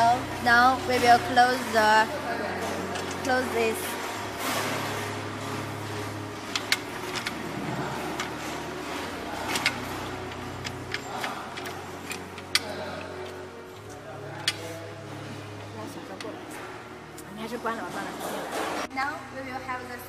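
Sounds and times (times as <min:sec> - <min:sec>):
steady low hum: 0:00.0 - 0:18.5
metal clicks and knocks: 0:05.9 - 0:14.7.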